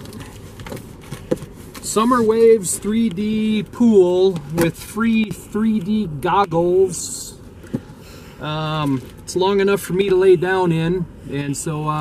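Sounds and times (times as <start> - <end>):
light knocks and rustles: 0.0 - 2.4
low steady hum: 0.0 - 12.0.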